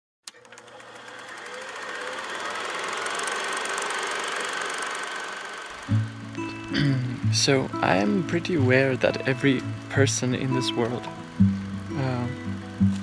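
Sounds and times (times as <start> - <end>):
film projector whirring and clicking: 0.2 - 6.4, 7.4 - 13.0
music: 5.9 - 13.0.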